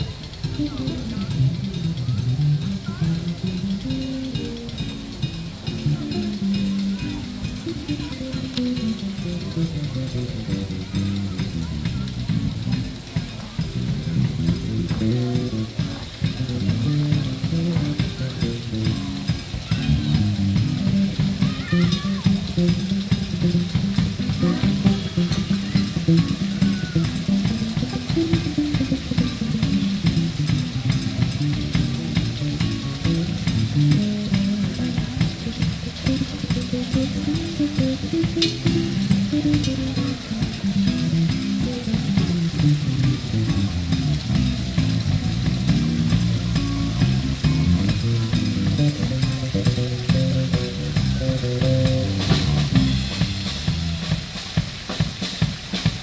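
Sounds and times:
electric bass line: 0:00.0 - 0:54.4
drum kit cymbal hiss: 0:00.0 - 0:56.0
electric guitar: 0:13.6 - 0:53.9.

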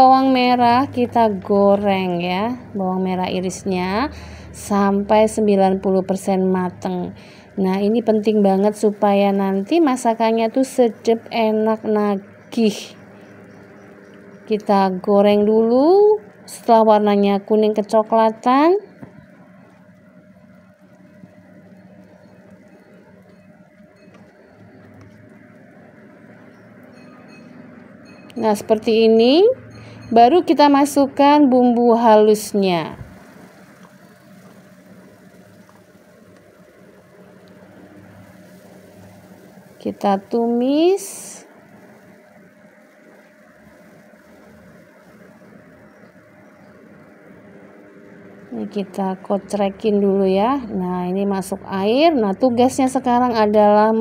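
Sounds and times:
low hum: 0:00.0 - 0:54.0
shallots sizzling in oil: 0:00.0 - 0:54.0.

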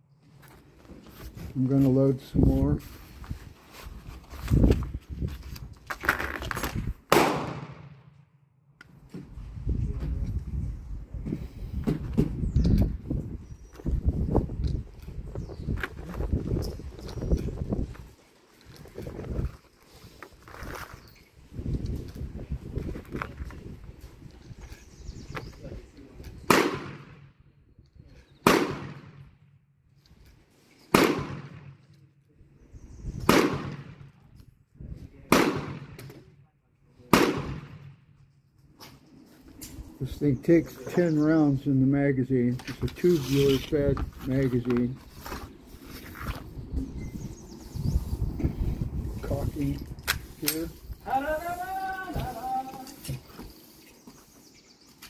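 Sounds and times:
gunshots with ringing echo: 0:07.1 - 0:08.1, 0:26.4 - 0:27.3, 0:28.4 - 0:29.3, 0:30.9 - 0:31.8, 0:33.3 - 0:34.0, 0:35.3 - 0:36.0, 0:37.1 - 0:38.0.

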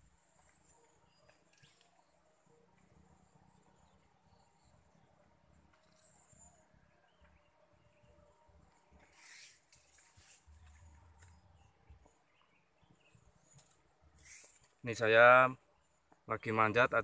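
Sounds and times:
faint rustling of leaves and branches: 0:00.0 - 0:17.0.

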